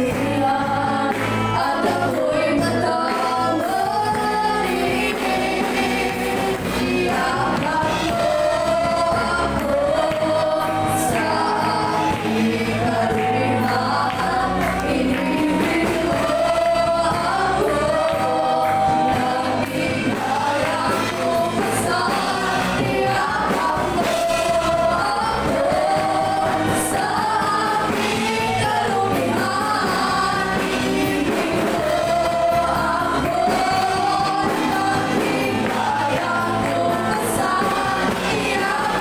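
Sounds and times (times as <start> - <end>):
band with guitars and drums: 0.0 - 39.0
congregation singing: 0.0 - 39.0
women singing worship music: 0.0 - 39.0.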